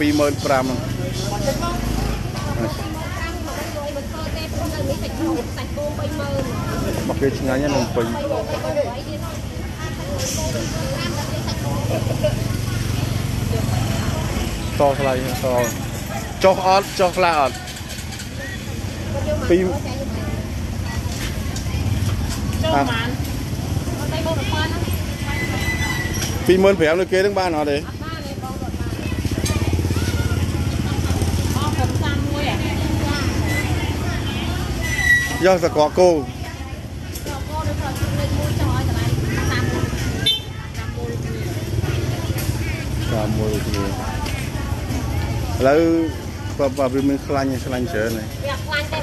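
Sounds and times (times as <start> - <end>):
people talking: 0.0 - 49.0
traffic engines rumbling: 0.0 - 49.0.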